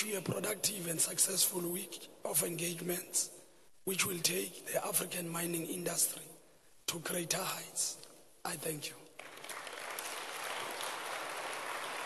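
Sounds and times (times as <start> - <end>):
audience applauding: 9.2 - 12.0.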